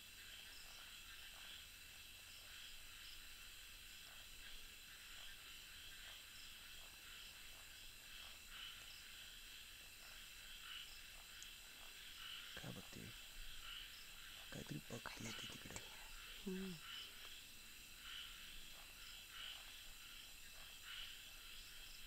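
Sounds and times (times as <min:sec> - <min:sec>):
crickets trilling: 0:00.0 - 0:22.0.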